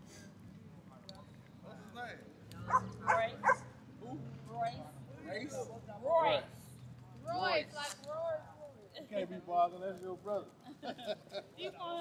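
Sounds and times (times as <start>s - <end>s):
small dog barking: 2.7s - 3.7s.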